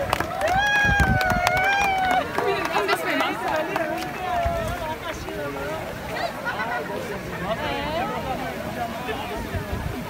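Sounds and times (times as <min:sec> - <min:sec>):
excited overlapping voices: 0:00.2 - 0:10.0.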